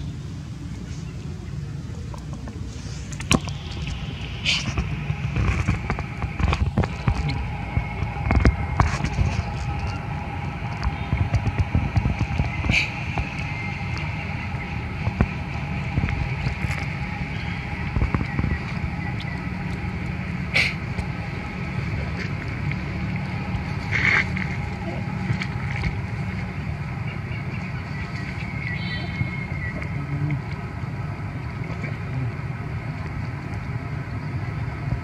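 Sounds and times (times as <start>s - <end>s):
faint high hum: 0.0s - 35.0s
wind rumble on microphone: 0.0s - 35.0s.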